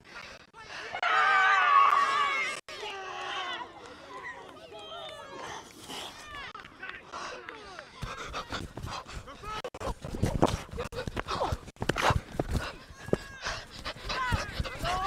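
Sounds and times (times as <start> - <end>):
players calling and shouting: 0.1 - 10.1, 10.7 - 15.0.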